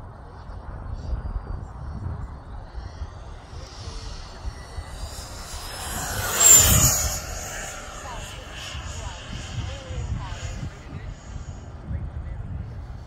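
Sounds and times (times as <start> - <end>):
model jet fan whine: 1.2 - 13.0.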